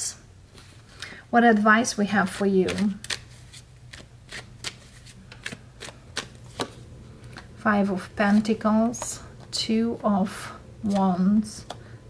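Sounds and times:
cards being shuffled: 0:02.6 - 0:07.5.

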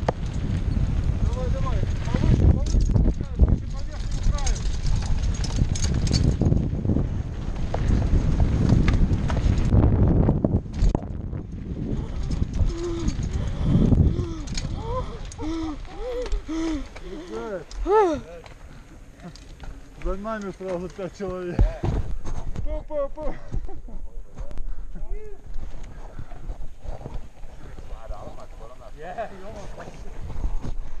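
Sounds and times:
bike rattles and knocks: 0:00.0 - 0:24.5
bike tyres rumbling on dirt: 0:00.0 - 0:31.0.

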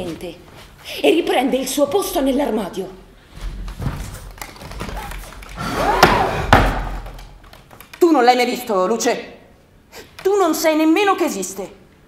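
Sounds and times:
wooden knocks and thuds: 0:03.4 - 0:07.4.

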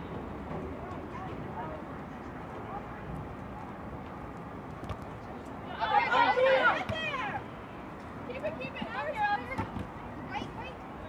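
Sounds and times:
crowd of voices shouting: 0:05.7 - 0:07.4.

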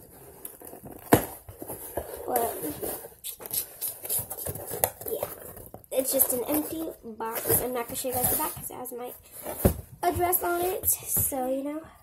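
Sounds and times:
cardboard box scraping and rustling: 0:00.0 - 0:03.2, 0:04.0 - 0:10.9.

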